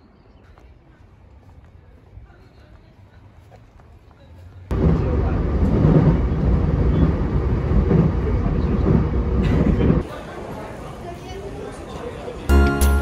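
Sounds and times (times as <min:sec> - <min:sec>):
train rumbling past: 0:04.7 - 0:12.5.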